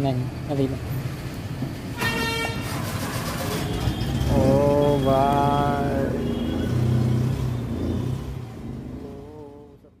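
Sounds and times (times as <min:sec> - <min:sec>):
vehicle engine rumble: 0:02.6 - 0:10.0.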